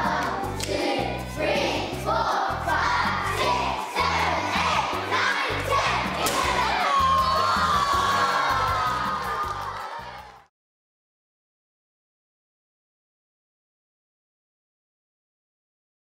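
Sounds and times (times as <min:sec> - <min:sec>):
children shouting and cheering: 0:00.0 - 0:10.5.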